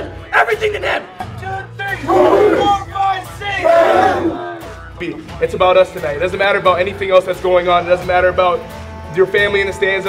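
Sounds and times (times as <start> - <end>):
background music with low beat: 0.0 - 10.0
group of men shouting together: 2.0 - 2.9, 3.5 - 4.7.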